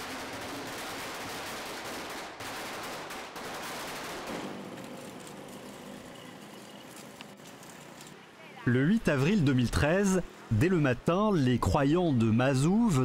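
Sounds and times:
firecrackers crackling: 0.0 - 8.2.

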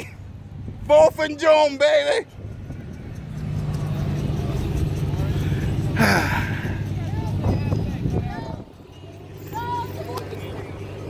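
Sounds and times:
engine idling hum: 0.0 - 11.0
faint voices: 0.9 - 11.0.

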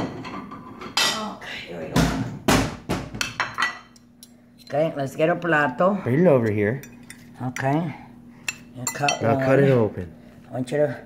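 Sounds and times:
plates and cutlery clattering: 0.0 - 1.3.

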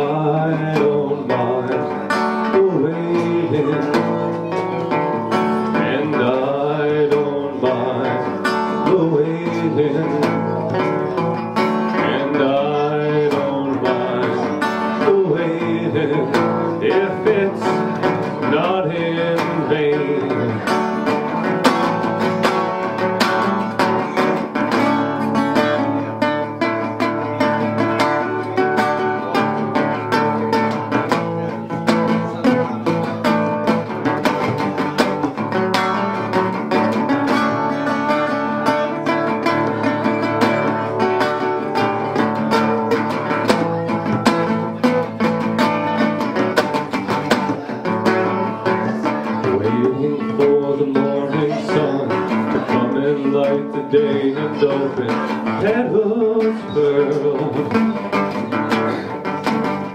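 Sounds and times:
resonator guitar playing: 0.0 - 59.9.

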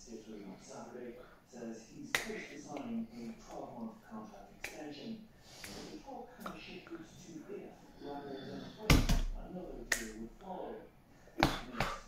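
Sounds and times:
hand slaps: 2.1 - 2.5, 9.9 - 10.2.

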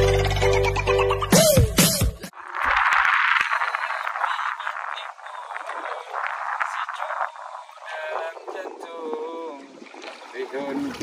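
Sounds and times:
water splashing around boat: 2.4 - 11.0
man's voice: 4.0 - 9.8.

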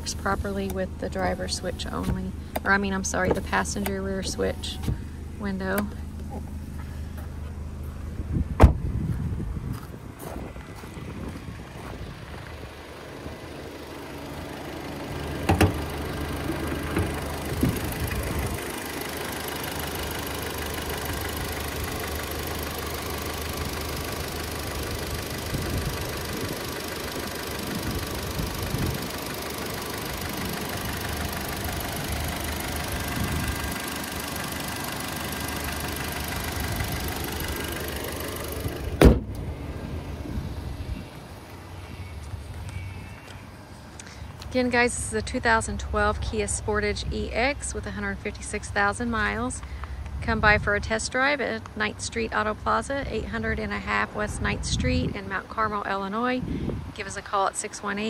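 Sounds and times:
car engine idling: 0.0 - 58.0
car hood slamming shut: 8.6 - 8.8, 15.4 - 15.8, 38.9 - 39.4
engine knock: 15.2 - 39.1.

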